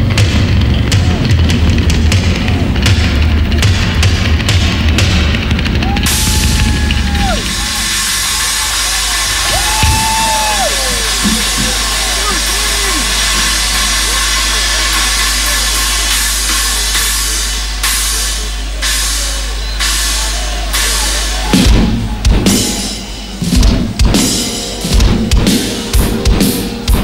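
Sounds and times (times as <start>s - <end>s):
drum hits: 0.0s - 17.1s, 20.8s - 27.0s
crowd cheering: 0.0s - 27.0s.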